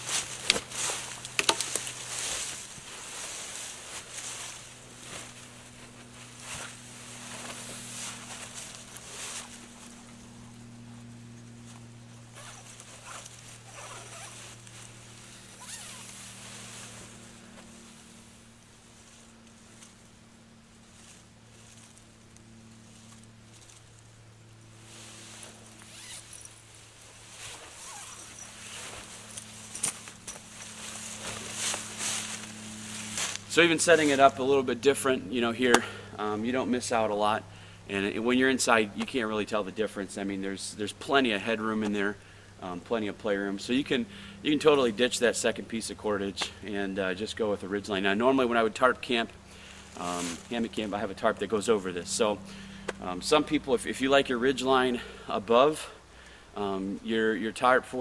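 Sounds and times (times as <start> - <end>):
dry leaves crackling underfoot: 0.0 - 37.2, 46.3 - 54.2
low steady hum: 0.0 - 58.0
zipper: 12.3 - 14.6, 15.4 - 16.2, 25.8 - 26.5, 27.5 - 29.4.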